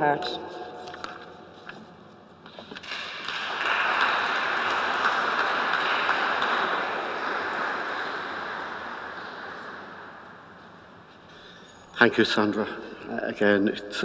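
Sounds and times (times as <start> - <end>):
congregation applauding: 2.6 - 12.7.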